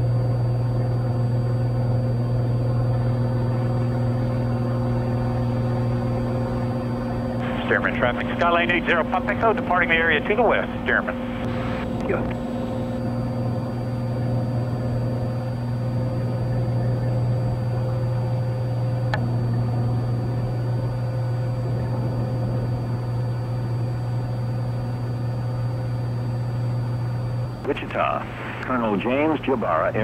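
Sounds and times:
propeller plane engine droning: 0:00.0 - 0:30.0.

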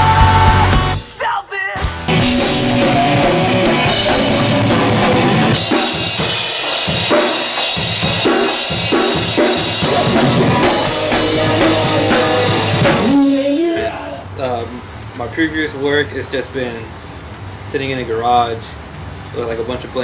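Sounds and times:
pop-punk band music: 0:00.0 - 0:14.1.

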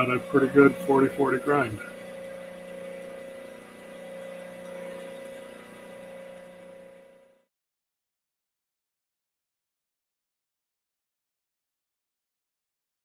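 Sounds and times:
electric motor hum: 0:00.0 - 0:07.5.

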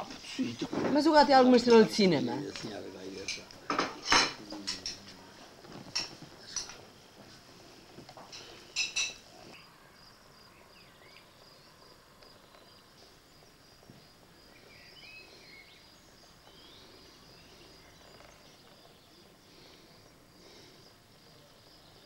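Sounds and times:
insects chirring: 0:00.0 - 0:22.0.

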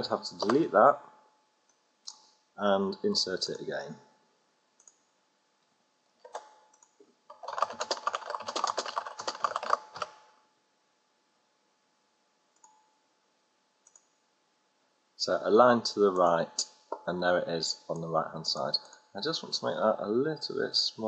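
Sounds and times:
typing on computer keyboard: 0:00.3 - 0:00.7, 0:06.3 - 0:10.2
faint clicks: 0:13.8 - 0:14.2.

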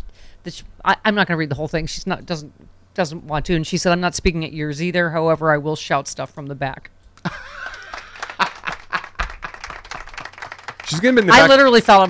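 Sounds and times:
people laughing hard: 0:07.2 - 0:09.8.

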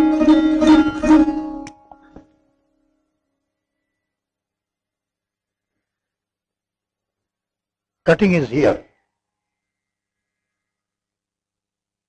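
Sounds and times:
plucked sarod notes: 0:00.0 - 0:02.2.

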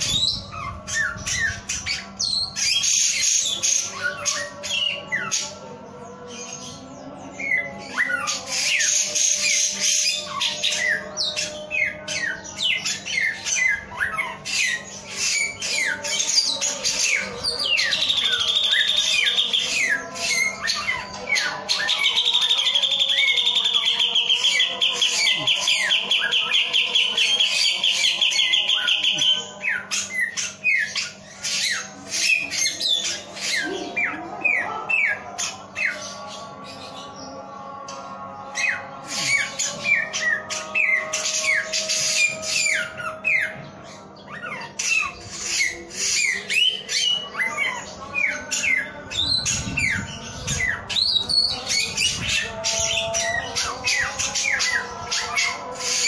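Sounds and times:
bird trill: 0:00.0 - 0:56.0
songbird singing: 0:00.0 - 0:56.0.

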